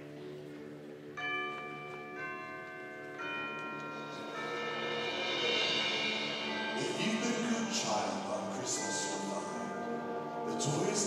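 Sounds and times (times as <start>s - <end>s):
bell-like mallet percussion strikes: 1.2s - 11.0s
low held wind notes: 3.8s - 11.0s.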